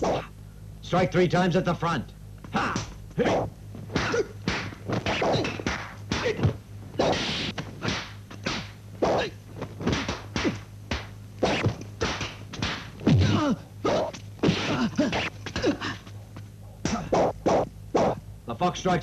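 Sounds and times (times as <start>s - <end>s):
wooden staff whacks and clacks: 2.7s - 15.6s.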